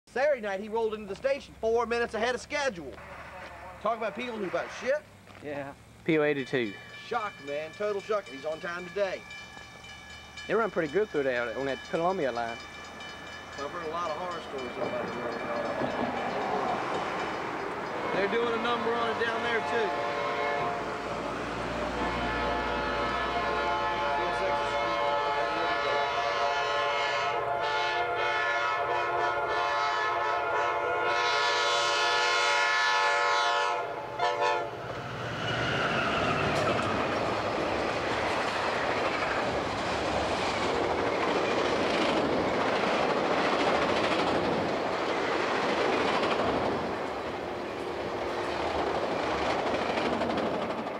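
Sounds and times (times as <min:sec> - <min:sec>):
train horn blast: 0:03.0 - 0:05.0, 0:18.0 - 0:21.2, 0:21.8 - 0:34.8
train wheels clattering over rails: 0:10.5 - 0:19.6, 0:34.9 - 0:50.9.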